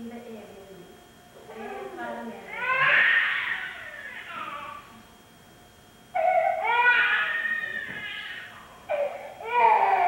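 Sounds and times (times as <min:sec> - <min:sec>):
infant crying: 0:06.2 - 0:10.0.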